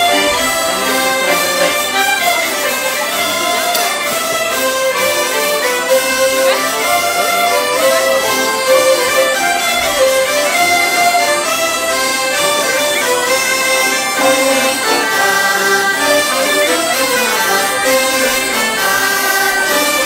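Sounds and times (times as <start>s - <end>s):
bagpipes: 0.0s - 20.0s
clarinet: 0.0s - 20.0s
folk dance music: 0.0s - 20.0s
hurdy-gurdies: 0.0s - 20.0s.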